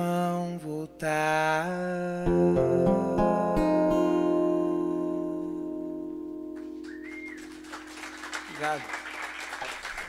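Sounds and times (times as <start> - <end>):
strummed guitar chord ringing: 2.2 - 9.0.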